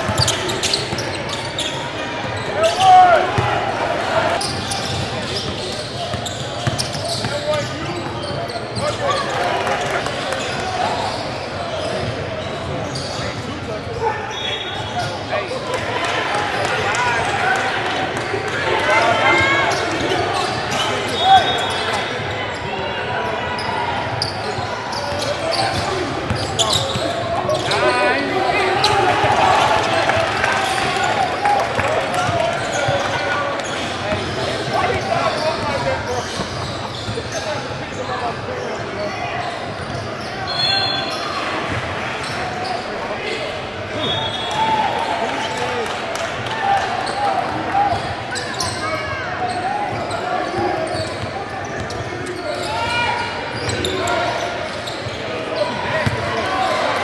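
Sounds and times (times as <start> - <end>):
crowd voices and shouts: 0.0 - 57.0.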